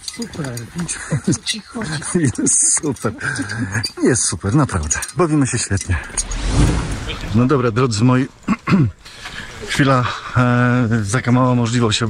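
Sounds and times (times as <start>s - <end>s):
man talking: 0.1s - 6.2s, 7.0s - 8.5s, 9.6s - 12.0s.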